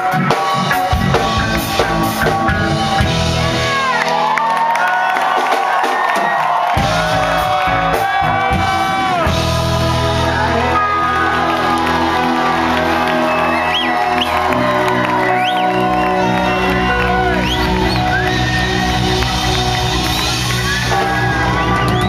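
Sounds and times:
bass guitar: 0:00.0 - 0:04.3, 0:06.8 - 0:22.0
live reggae band playing: 0:00.0 - 0:04.4, 0:06.8 - 0:22.0
crowd whooping and cheering: 0:02.6 - 0:22.0.

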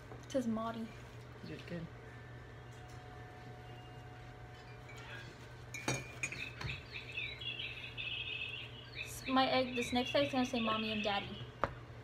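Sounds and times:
steady low hum: 0:00.0 - 0:12.0
high twittering chirps: 0:06.1 - 0:11.6.

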